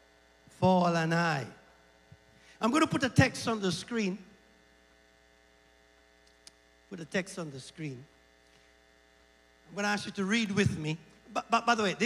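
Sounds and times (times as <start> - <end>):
faint electrical mains hum: 0.0 - 12.0
man speaking: 0.6 - 1.6, 2.6 - 4.3, 6.9 - 8.1, 9.7 - 12.0.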